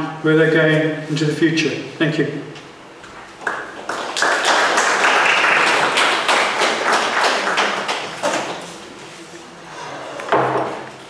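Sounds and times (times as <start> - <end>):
audience applauding: 3.4 - 8.8.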